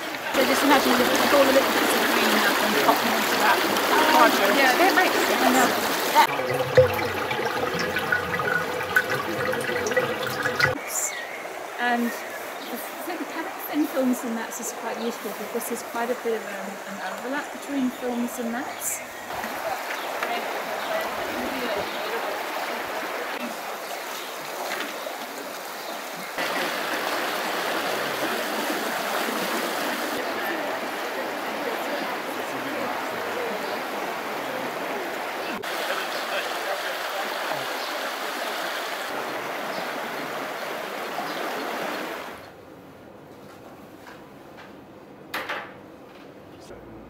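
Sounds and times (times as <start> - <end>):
river rushing over stones: 0.0 - 10.8, 19.4 - 42.4.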